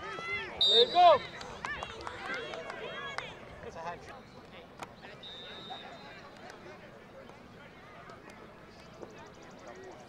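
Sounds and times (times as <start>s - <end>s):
distant voices of players and spectators: 0.0s - 10.0s.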